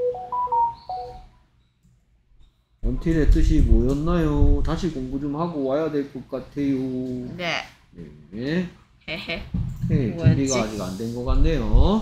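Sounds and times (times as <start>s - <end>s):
electronic chime melody: 0.0s - 1.3s.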